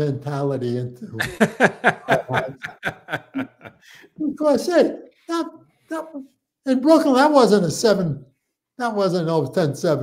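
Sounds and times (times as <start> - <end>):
men laughing: 1.2 - 4.2.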